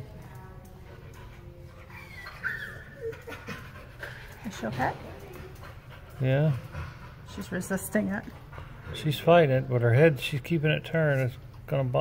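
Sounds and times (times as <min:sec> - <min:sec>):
small dog whining: 0:01.8 - 0:03.4.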